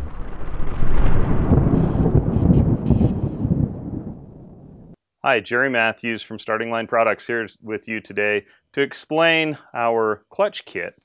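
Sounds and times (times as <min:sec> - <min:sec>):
rumbling roar with crackle: 0:00.0 - 0:05.0.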